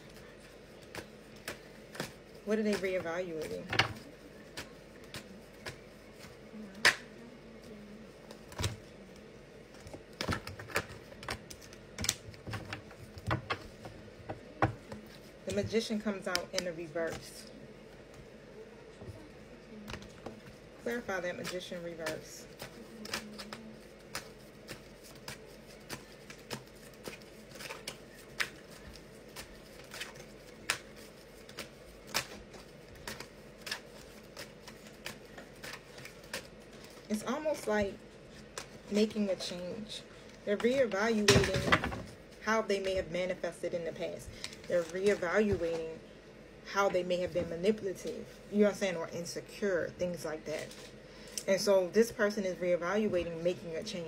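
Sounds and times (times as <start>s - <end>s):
cards being shuffled: 19.9s - 39.2s.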